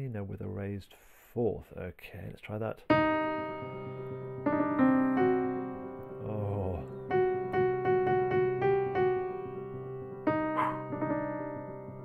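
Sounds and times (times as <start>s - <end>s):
slow piano notes: 2.9s - 12.0s.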